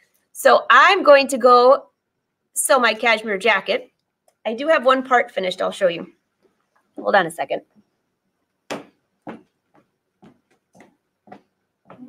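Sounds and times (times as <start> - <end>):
faint footsteps: 8.7 - 12.0.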